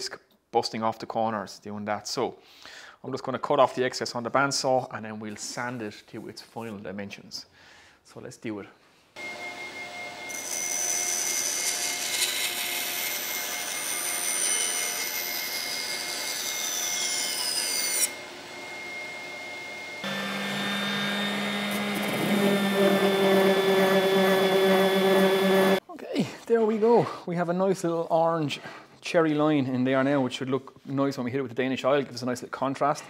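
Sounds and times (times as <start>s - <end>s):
bandsaw cutting wood: 10.3s - 18.2s, 20.0s - 25.8s
random orbit sander: 20.0s - 25.8s.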